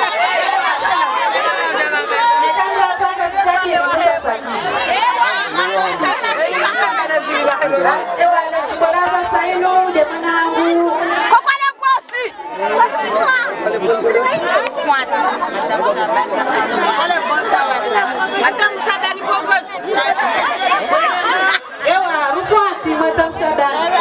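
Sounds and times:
overlapping chatter of voices: 0.0s - 24.0s.

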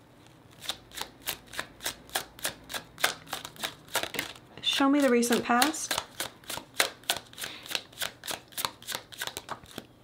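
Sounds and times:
cards being shuffled: 0.5s - 4.4s, 5.0s - 9.9s.

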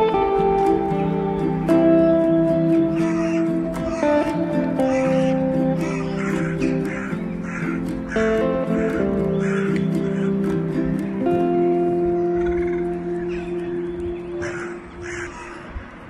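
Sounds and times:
calm music with held notes: 0.0s - 15.5s
short repeated bird calls: 4.8s - 10.3s.

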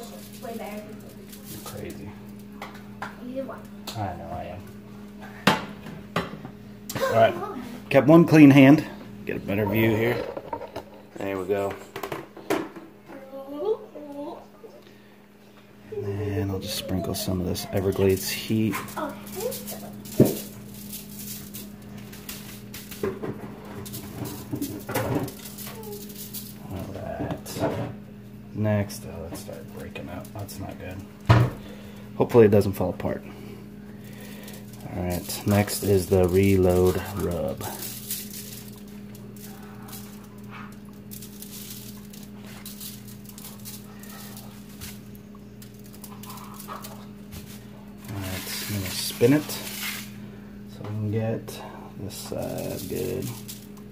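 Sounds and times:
shaker bottle rattling: 0.0s - 1.9s, 16.7s - 27.0s, 34.0s - 50.1s, 52.3s - 53.9s
steady low hum: 0.0s - 53.9s.

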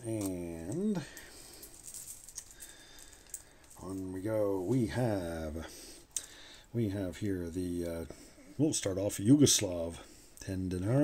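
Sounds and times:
coins clicking together: 0.2s - 4.0s.

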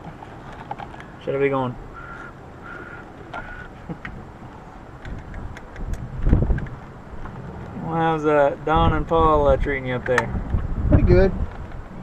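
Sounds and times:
wind buffeting microphone: 1.8s - 12.0s.

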